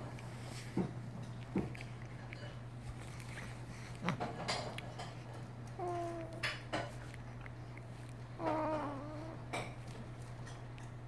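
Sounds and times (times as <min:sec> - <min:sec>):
baby cooing: 0:05.8 - 0:06.5, 0:08.4 - 0:09.5.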